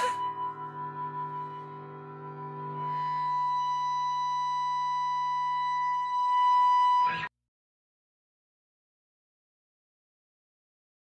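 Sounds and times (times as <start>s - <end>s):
sustained electric guitar tone: 0.0s - 7.3s.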